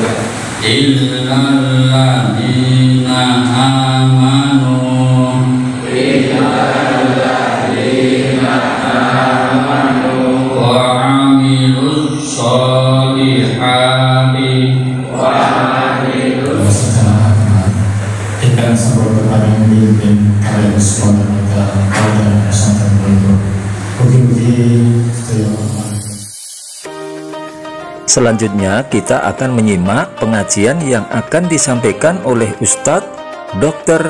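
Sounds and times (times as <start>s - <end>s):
man chanting into a microphone: 0.0s - 26.3s.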